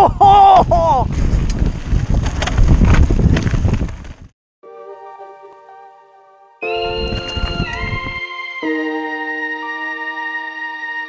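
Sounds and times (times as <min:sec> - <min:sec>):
wind buffeting microphone: 0:00.0 - 0:04.3, 0:06.8 - 0:08.2
bike rattling over dirt trail: 0:01.1 - 0:04.3
quiet sustained music: 0:04.6 - 0:11.0.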